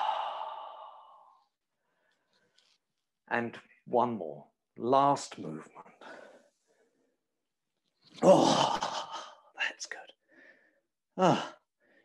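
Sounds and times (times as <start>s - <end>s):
person sighing: 0.0s - 1.3s, 8.2s - 9.4s.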